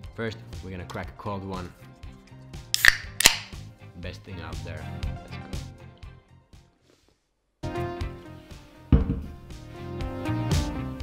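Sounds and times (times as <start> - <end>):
drink can cracking open: 2.8 - 3.6.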